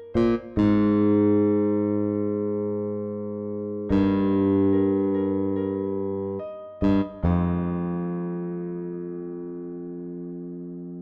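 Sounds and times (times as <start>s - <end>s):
bass guitar low note: 0.2s - 11.0s.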